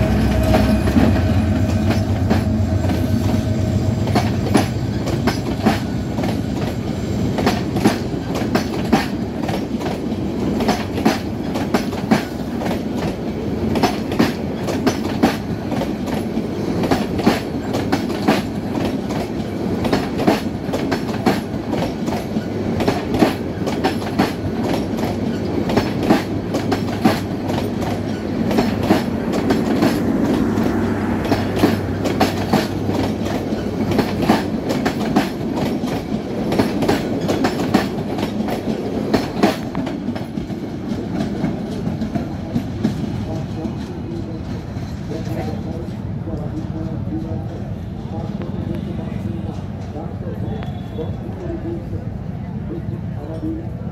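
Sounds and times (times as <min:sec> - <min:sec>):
train wheels clacking over rail joints: 0:00.0 - 0:48.8
diesel locomotive engine hum: 0:00.0 - 0:53.9.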